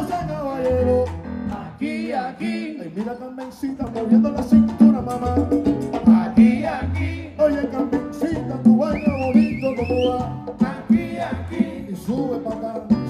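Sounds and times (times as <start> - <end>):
salsa band playing: 0.0 - 13.0.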